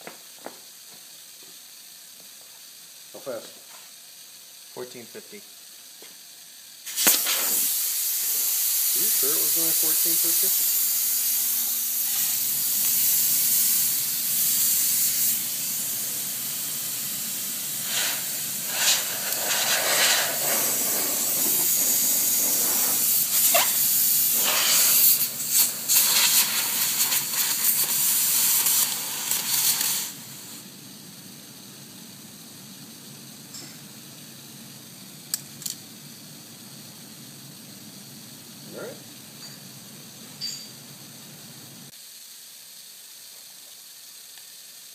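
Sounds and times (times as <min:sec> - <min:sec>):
pressurized air hissing: 0:05.6 - 0:44.9.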